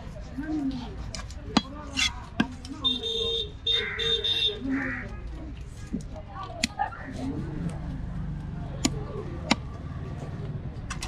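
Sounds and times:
knife chopping on wood: 8.8 - 9.8.

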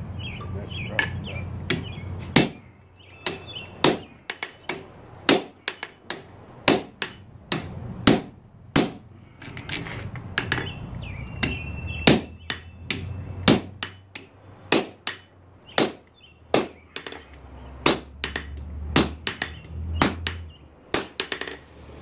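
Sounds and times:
hammer striking metal on an anvil: 3.2 - 10.7.

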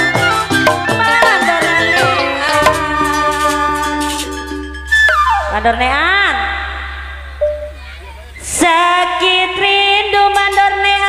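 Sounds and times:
wailing sliding melody: 0.0 - 6.5
held chord: 0.6 - 4.6.

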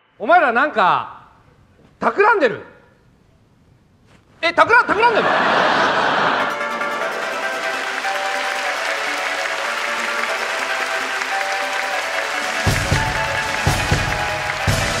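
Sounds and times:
audience applause: 5.2 - 15.0
music with held notes: 6.2 - 15.0
drum beat with heavy kick: 12.6 - 15.0.

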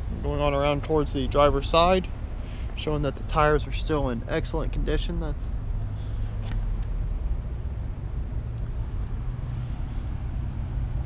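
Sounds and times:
outdoor background noise: 0.0 - 11.0
vehicle engine idling: 0.0 - 11.0.

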